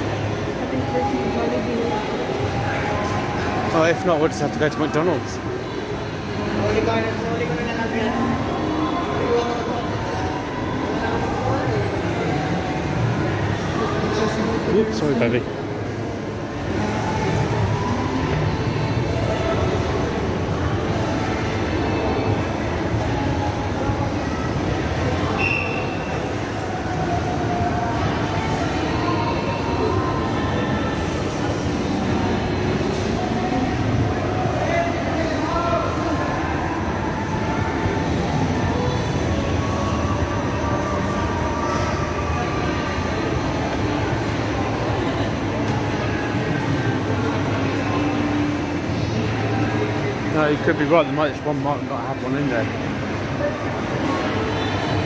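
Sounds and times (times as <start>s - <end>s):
people chattering: 0.0s - 55.0s.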